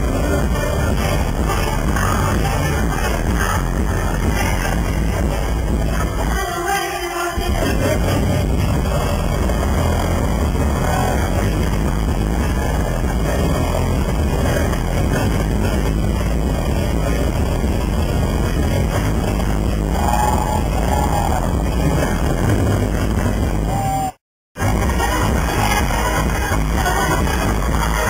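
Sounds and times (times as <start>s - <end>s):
heavy distorted bass: 0.0s - 6.8s, 7.4s - 28.0s
loud live pop concert music: 0.0s - 28.0s.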